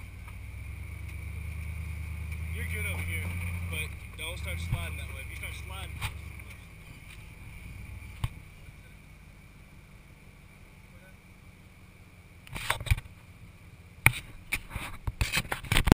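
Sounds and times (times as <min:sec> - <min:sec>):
rocks cracking under tyres: 0:00.0 - 0:08.5
truck engine running low: 0:00.0 - 0:15.9.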